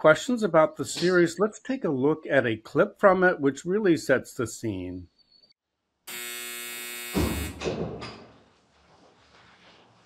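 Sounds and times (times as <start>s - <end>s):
electric buzz: 6.1s - 7.6s.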